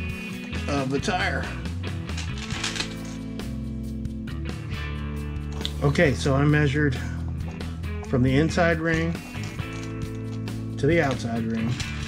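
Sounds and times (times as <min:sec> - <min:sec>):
background music with bass: 0:00.0 - 0:12.0
small chain clicking: 0:02.1 - 0:03.2, 0:09.2 - 0:10.6.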